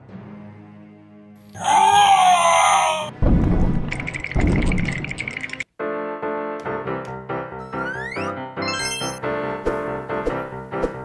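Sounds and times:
loud screaming roar: 0:01.6 - 0:03.1.

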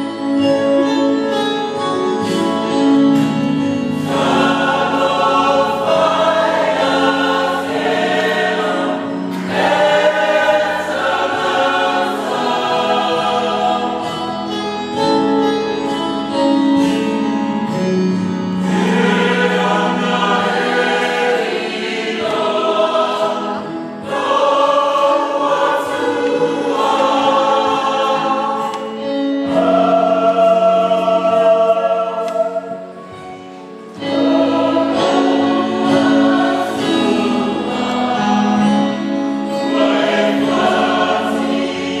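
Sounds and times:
mixed choir singing a hymn: 0:03.1 - 0:16.0, 0:17.7 - 0:42.0.

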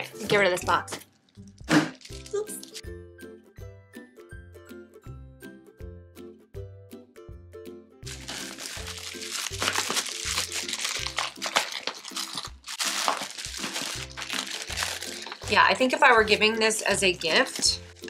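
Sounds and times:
plastic packaging crinkling: 0:01.1 - 0:02.8, 0:08.1 - 0:15.7.

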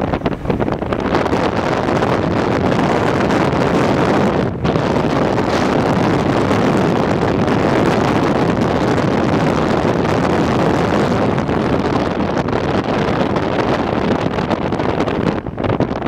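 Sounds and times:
road noise: 0:00.0 - 0:16.0
wind rushing over microphone: 0:00.0 - 0:16.0.

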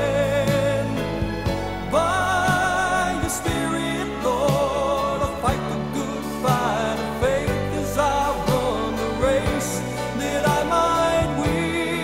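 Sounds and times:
pop song with band: 0:00.0 - 0:12.0.

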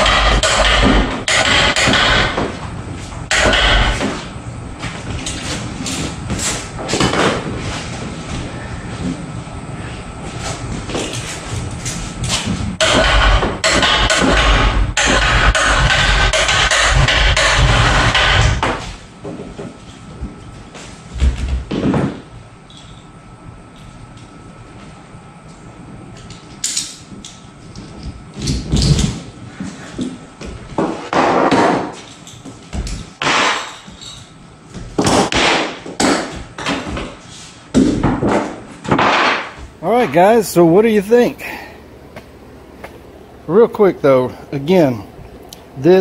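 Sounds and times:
electric hoist motor running: 0:00.0 - 0:06.8, 0:11.5 - 0:18.9.

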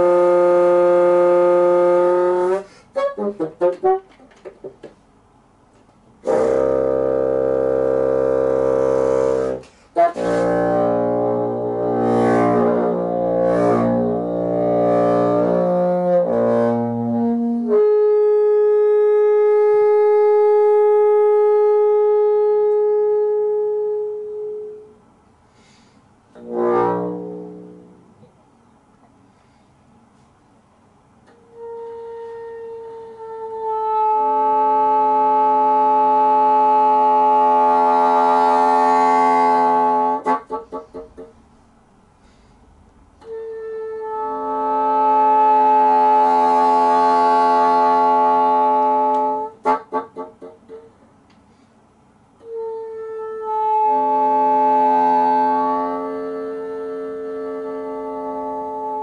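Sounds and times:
bassoon holding long note: 0:00.0 - 0:04.2, 0:06.2 - 0:25.0, 0:26.4 - 0:28.3, 0:31.3 - 0:41.3, 0:43.2 - 0:50.9, 0:52.4 - 0:59.0
faint hiss: 0:09.4 - 0:10.6, 0:22.8 - 0:26.4, 0:40.7 - 0:44.2, 0:50.7 - 0:52.9.

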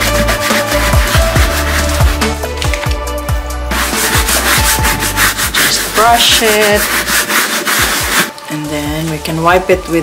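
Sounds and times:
brush scrubbing wet canvas: 0:00.0 - 0:02.9, 0:03.7 - 0:10.0.

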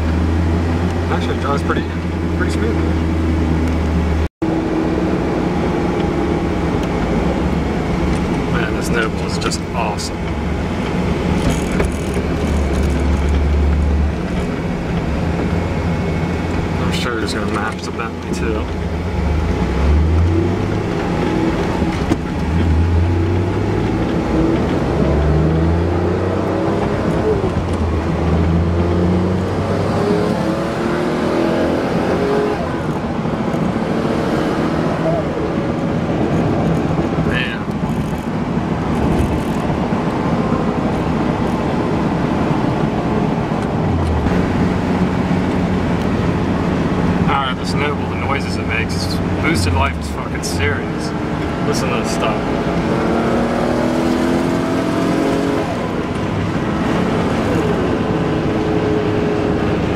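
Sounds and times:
car engine accelerating: 0:00.0 - 0:59.9
road noise: 0:00.0 - 0:59.9.

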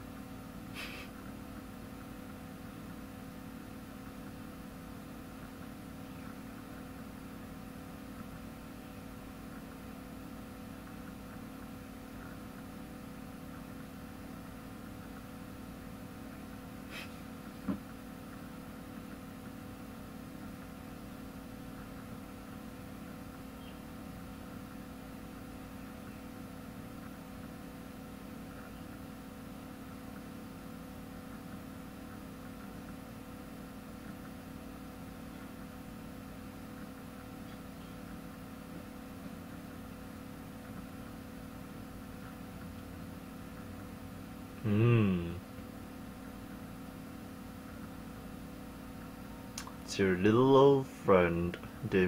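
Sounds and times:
low hum with tones: 0:00.0 - 0:52.0
even hiss: 0:00.7 - 0:01.1.

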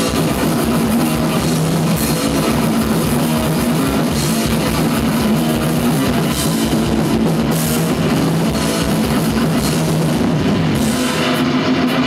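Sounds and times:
distorted electric guitars riffing: 0:00.0 - 0:12.0
drum kit: 0:00.0 - 0:12.0.

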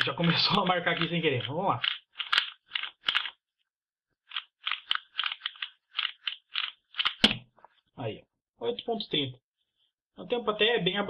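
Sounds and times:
plastic puzzle cube layers clacking: 0:00.0 - 0:03.4, 0:04.2 - 0:07.3
hands slapping timer pads: 0:04.3 - 0:07.5.

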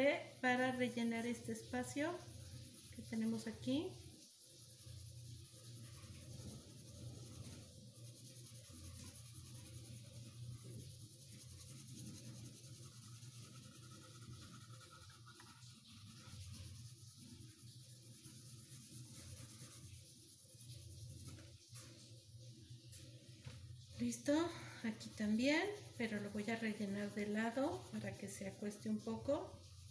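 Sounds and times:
low steady hum: 0:00.0 - 0:29.9
pencil scratching on paper: 0:00.9 - 0:21.5, 0:24.8 - 0:29.9.

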